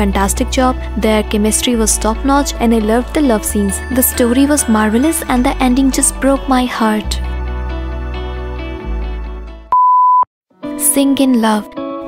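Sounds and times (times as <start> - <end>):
background music: 0.0 - 9.7, 10.5 - 12.0.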